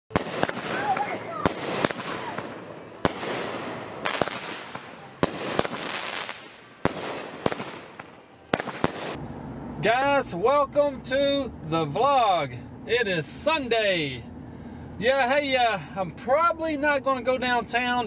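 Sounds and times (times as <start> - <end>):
fireworks bangs: 0.1 - 9.2
fireworks crackle: 0.1 - 9.2.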